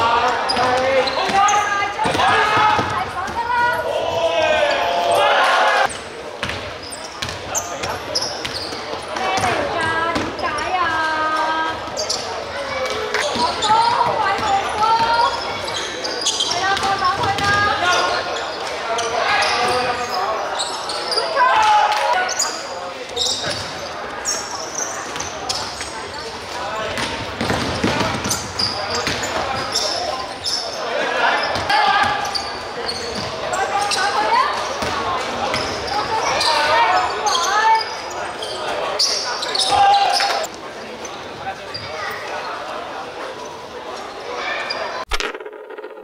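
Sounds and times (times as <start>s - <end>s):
indistinct shouts: 2.1s - 5.9s.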